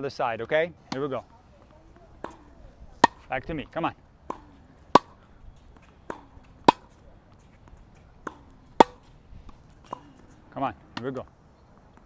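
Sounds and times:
faint ball impacts: 0:00.9 - 0:11.3
racket striking tennis ball: 0:02.1 - 0:11.1.

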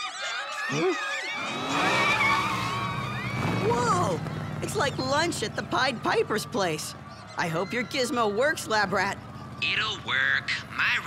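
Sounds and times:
cartoon car engine speeding: 0:00.2 - 0:11.0
tyres screeching: 0:00.7 - 0:11.0.

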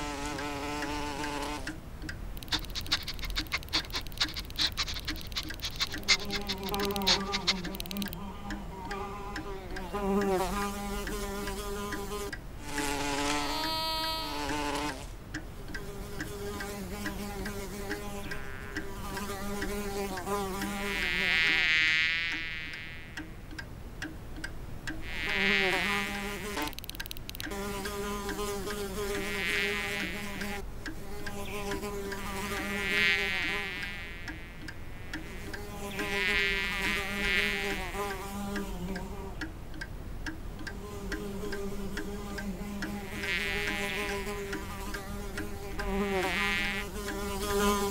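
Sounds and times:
bee buzzing: 0:00.0 - 0:01.8, 0:02.4 - 0:23.4, 0:25.0 - 0:39.5, 0:40.6 - 0:47.9.

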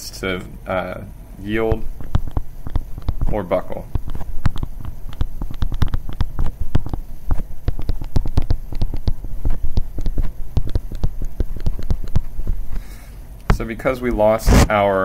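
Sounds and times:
steady low hum: 0:00.0 - 0:15.0
stylus tapping and scraping on tablet: 0:01.7 - 0:13.6.

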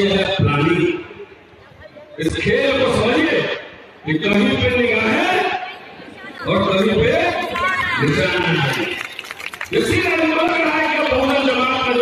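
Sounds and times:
man speaking through microphone: 0:00.0 - 0:01.2, 0:02.2 - 0:05.7, 0:06.4 - 0:09.0, 0:09.7 - 0:12.0
crowd chatter: 0:00.0 - 0:12.0.

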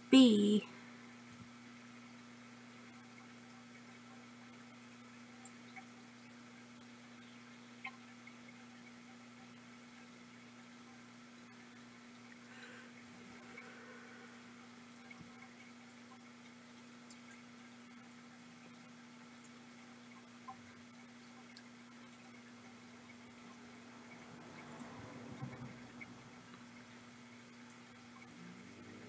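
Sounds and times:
low electrical hum: 0:00.0 - 0:29.0.

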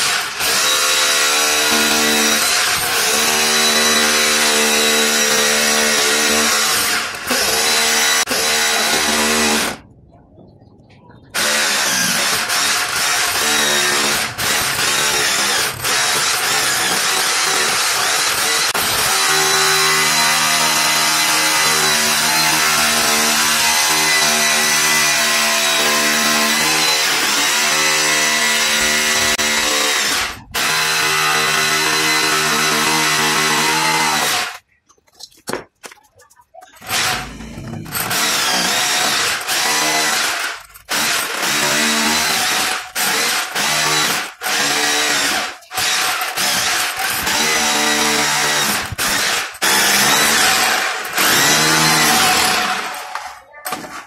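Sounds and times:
hammer drill boring into masonry: 0:00.0 - 0:09.8, 0:11.4 - 0:34.6, 0:36.8 - 0:54.0.

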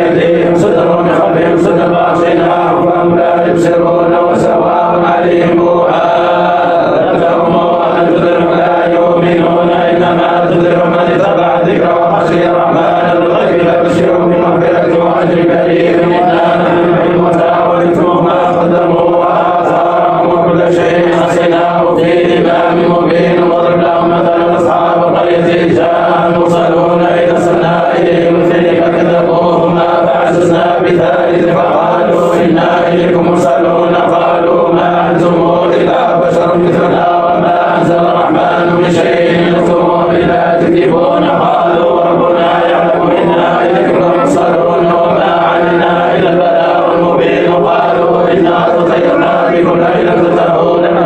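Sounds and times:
men chanting devotional chant: 0:00.0 - 0:51.0.

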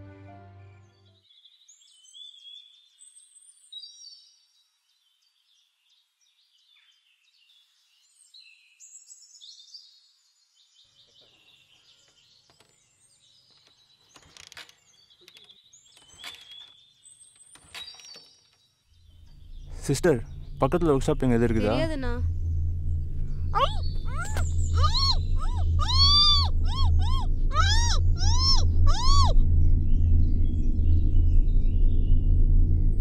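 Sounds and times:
background music: 0:00.0 - 0:01.2
faint birdsong: 0:00.7 - 0:33.0
low hum: 0:19.0 - 0:33.0.

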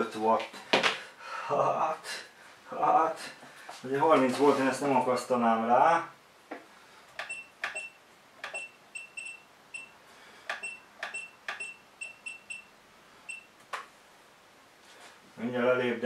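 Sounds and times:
short high beeps: 0:10.6 - 0:12.7.

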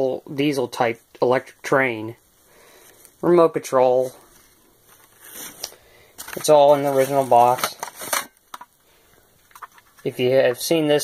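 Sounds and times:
cardboard box rustling: 0:06.2 - 0:08.3.

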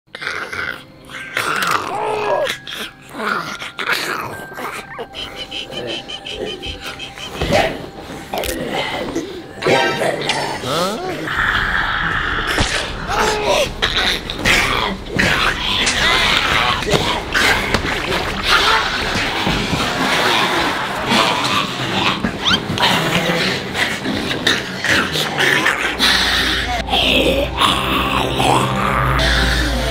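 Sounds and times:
people growling and squealing: 0:00.1 - 0:29.9
man growling: 0:10.2 - 0:17.5, 0:25.0 - 0:29.9.

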